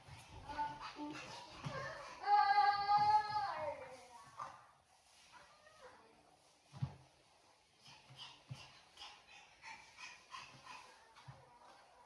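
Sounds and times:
toddler vocal sounds: 0.4s - 3.8s.

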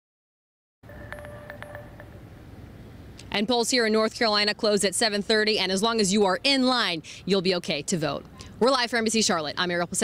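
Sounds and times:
faint steady tone: 0.9s - 3.1s.

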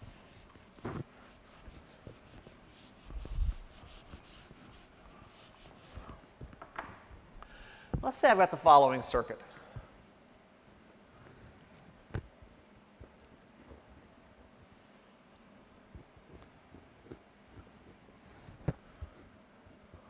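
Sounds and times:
marker drawing on whiteboard: 0.0s - 6.6s, 11.9s - 20.0s.

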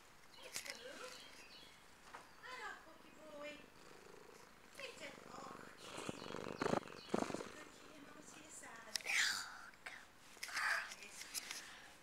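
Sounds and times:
cat purring: 2.9s - 8.7s.

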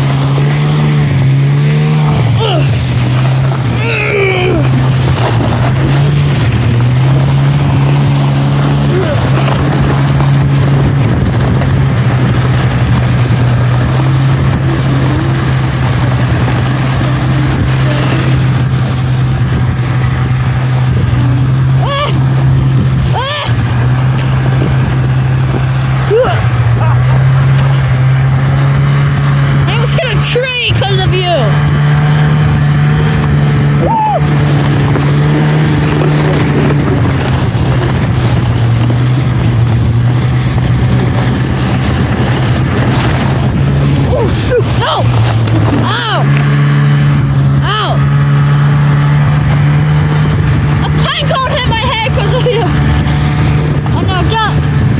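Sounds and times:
wind and snow rush: 0.0s - 29.7s, 31.6s - 50.8s
snowmobile engine droning: 0.0s - 54.9s
person calling out: 2.3s - 2.8s, 3.7s - 4.8s, 8.8s - 9.5s, 21.7s - 22.3s, 23.0s - 23.7s, 26.0s - 27.2s, 44.1s - 45.2s, 47.6s - 48.1s.

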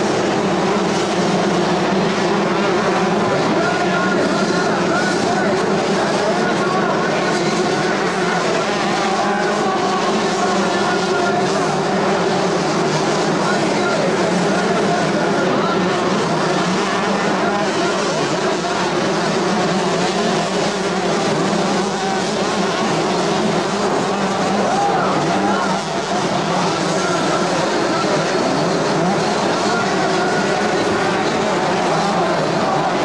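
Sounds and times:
motocross bike engines revving: 0.0s - 33.0s.

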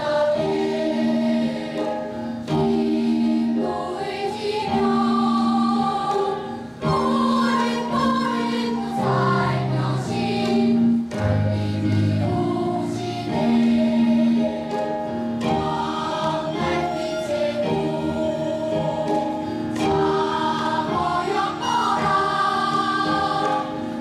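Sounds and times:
choir singing long held notes: 0.0s - 24.0s.

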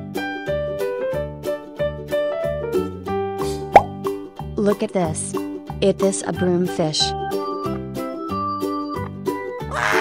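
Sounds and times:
cheerful background music: 0.0s - 10.0s
rising plop: 3.7s - 4.0s.

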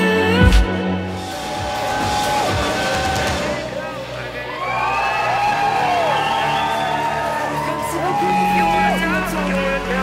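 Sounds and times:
crowd noise: 0.6s - 10.0s.

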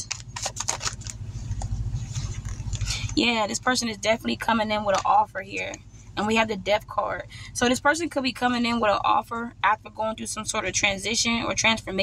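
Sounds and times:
cards flicking and shuffling: 0.0s - 3.2s
cards rustling: 0.0s - 3.2s
low steady hum: 0.0s - 12.0s.

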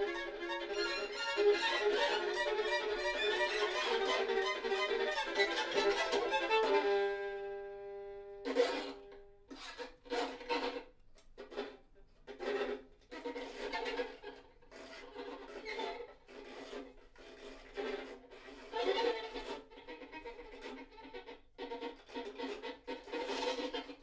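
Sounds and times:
violin duet: 0.0s - 24.0s.

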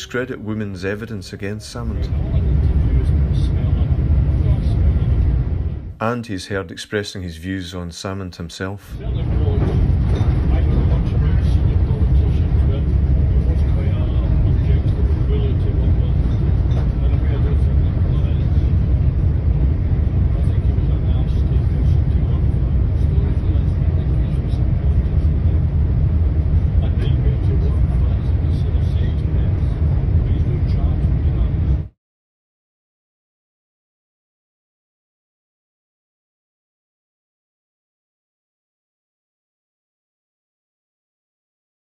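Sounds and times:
man talking: 0.0s - 5.3s, 6.0s - 18.8s, 19.9s - 25.7s, 26.7s - 31.9s
train rumble inside carriage: 1.6s - 5.9s, 9.0s - 31.9s.

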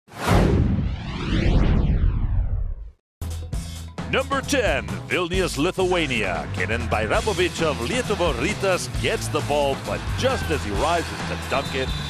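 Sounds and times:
whoosh with deep rumble: 0.1s - 3.0s.

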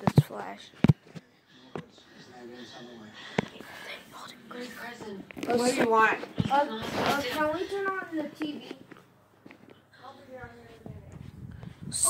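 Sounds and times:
quiet voices talking: 0.0s - 12.0s.

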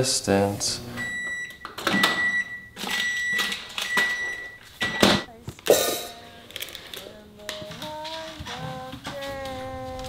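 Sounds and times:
microwave oven beeping: 0.9s - 5.3s.

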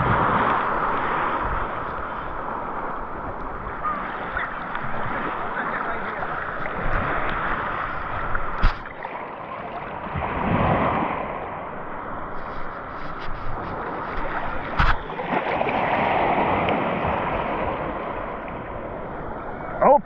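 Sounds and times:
sea water sloshing and lapping: 0.0s - 20.0s.

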